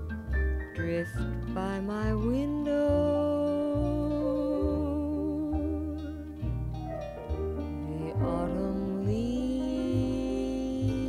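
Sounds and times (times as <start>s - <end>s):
low bass notes: 0.0s - 11.0s
small jazz band: 0.0s - 11.0s
woman singing long note: 1.6s - 6.2s, 7.9s - 11.0s.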